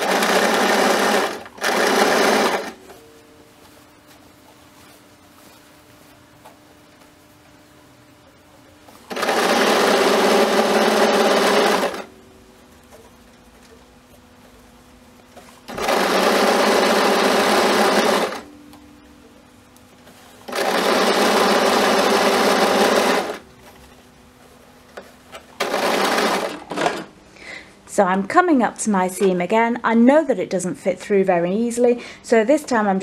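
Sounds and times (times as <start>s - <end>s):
electric sewing machine stitching: 0.0s - 2.8s, 9.1s - 12.1s, 15.7s - 18.5s, 20.4s - 23.4s, 25.6s - 27.1s.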